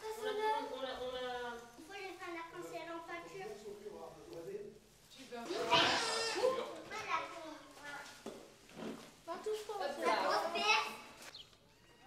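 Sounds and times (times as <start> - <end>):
children laughing and calling out: 0.0 - 1.0, 5.5 - 7.8.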